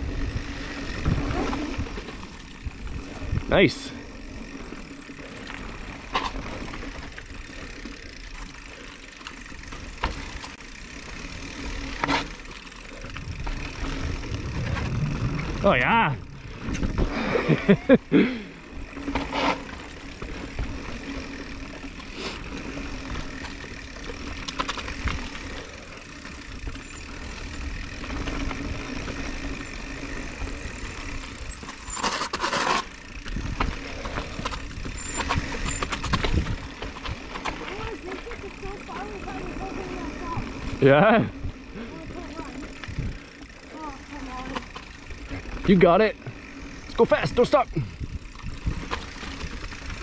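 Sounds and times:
bike tyres and wind rushing: 0.0 - 50.0
person laughing: 17.1 - 18.6.

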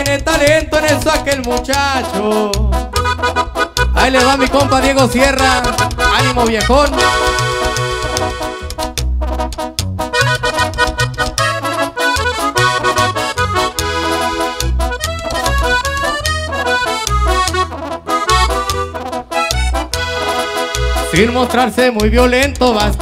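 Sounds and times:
plucked upright bass: 0.0 - 23.0
tuba bass line: 0.0 - 23.0
button accordion playing: 0.1 - 21.8.

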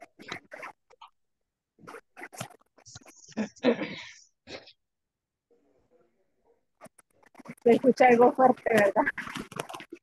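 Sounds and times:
person talking: 7.5 - 9.5.

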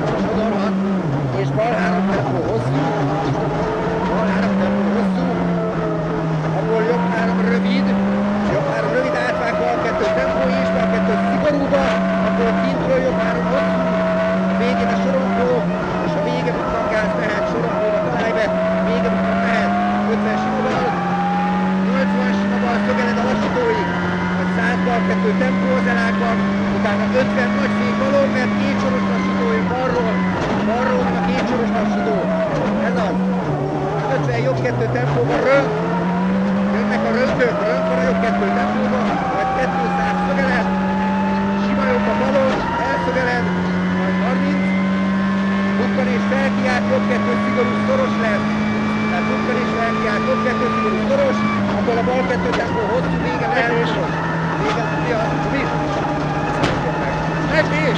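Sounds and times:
gear changes: 0.0 - 57.9
rally car engine revving: 0.0 - 57.9.

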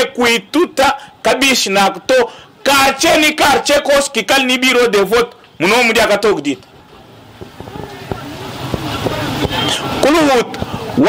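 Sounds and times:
motor vehicle running: 6.6 - 11.0.

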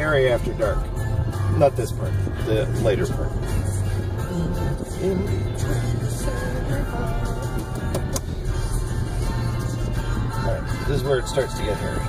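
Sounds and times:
car engine and tyres rumbling: 0.0 - 12.0
music in a car: 0.0 - 12.0.

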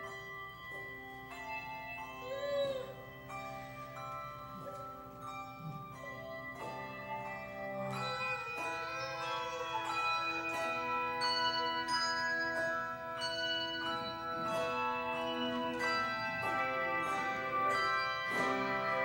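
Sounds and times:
handbell choir ringing: 0.0 - 19.0.

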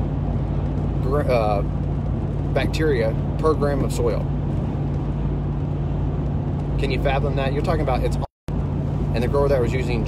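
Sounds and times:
road and engine drone: 0.0 - 10.0.

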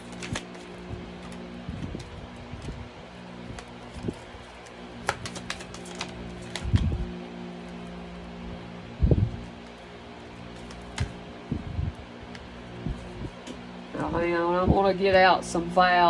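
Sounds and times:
cards being shuffled: 0.0 - 8.0, 9.4 - 11.4
steady hum: 0.0 - 16.0.

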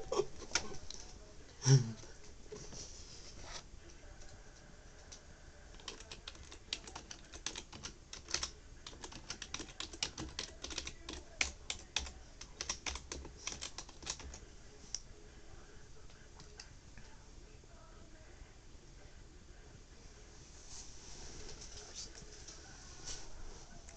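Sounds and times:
typing on computer keyboard: 5.0 - 14.4.

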